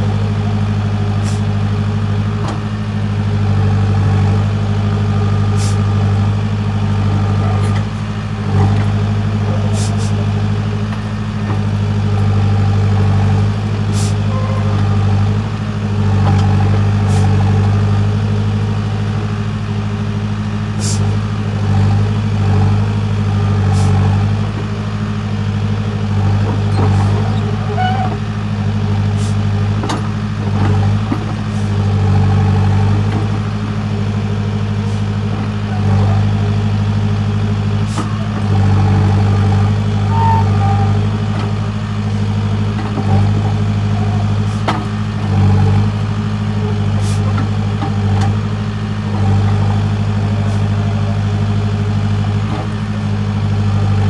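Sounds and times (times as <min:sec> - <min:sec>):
backhoe diesel engine running: 0:00.0 - 0:54.0.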